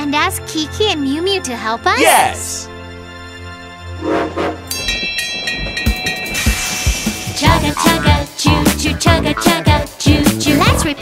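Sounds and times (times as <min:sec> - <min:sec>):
children's music jingle: 0:04.8 - 0:11.0.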